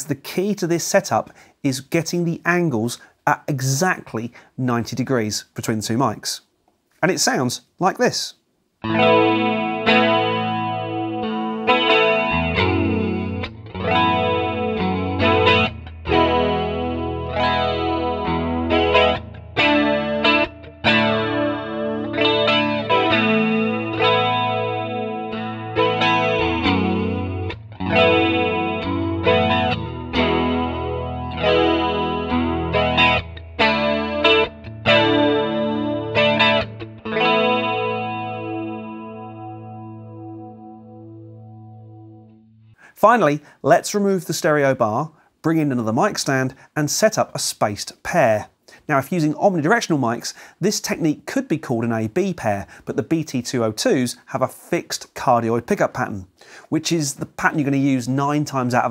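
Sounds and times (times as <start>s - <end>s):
electric guitar chords: 8.8s - 42.9s.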